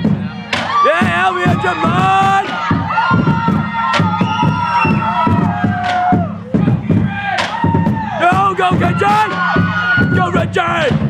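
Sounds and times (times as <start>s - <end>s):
drumline playing a steady beat: 0.0s - 11.0s.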